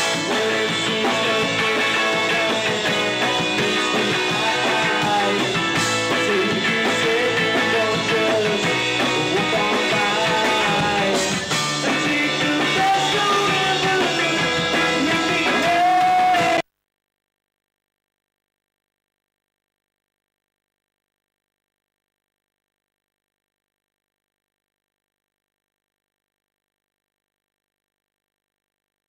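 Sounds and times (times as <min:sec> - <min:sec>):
bass guitar: 0:00.0 - 0:16.6
electric guitar: 0:00.0 - 0:16.6
drums: 0:00.0 - 0:16.7
man singing: 0:00.0 - 0:16.7.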